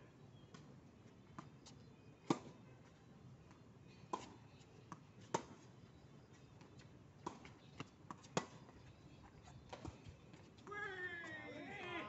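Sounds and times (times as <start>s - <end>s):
tennis ball impacts: 2.2s - 2.5s, 5.3s - 5.6s, 8.1s - 8.6s.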